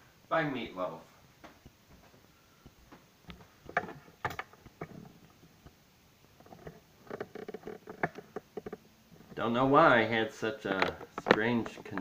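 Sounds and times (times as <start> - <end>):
handling clicks and knocks: 3.3 - 5.8, 6.4 - 9.4, 10.6 - 12.0.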